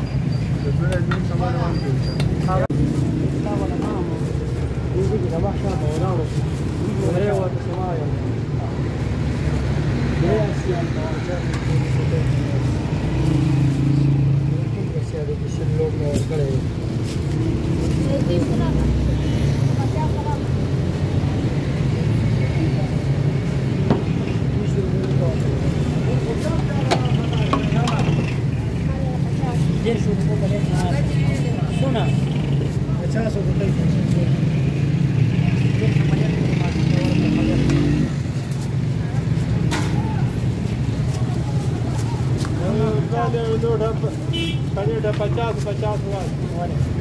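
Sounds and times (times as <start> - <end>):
motor vehicles passing: 0.0 - 47.0
people talking: 18.0 - 23.1, 24.4 - 34.4, 35.3 - 38.1, 41.0 - 47.0.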